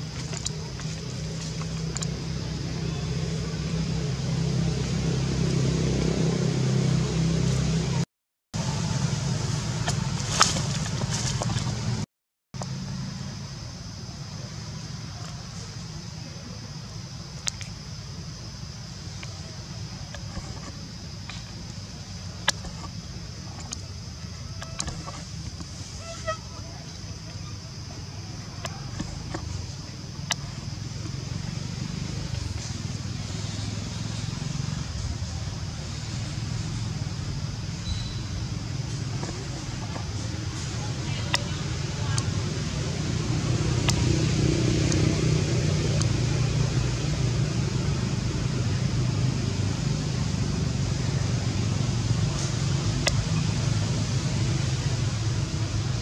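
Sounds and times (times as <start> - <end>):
steady low hum: 0.0 - 8.0, 8.6 - 56.0.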